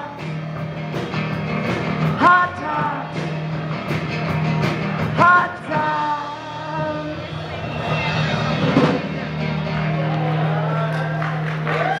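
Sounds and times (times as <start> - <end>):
rock band holding chord: 0.0 - 11.9
loud drum hit: 7.4 - 9.6.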